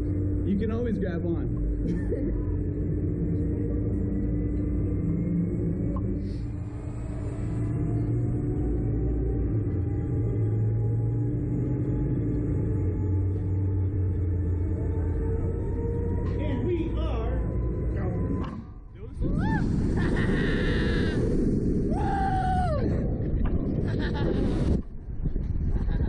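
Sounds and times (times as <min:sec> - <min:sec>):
ride machinery rumbling: 0:00.0 - 0:26.0
wind rushing over microphone: 0:19.0 - 0:26.0
riders screaming: 0:19.2 - 0:23.0.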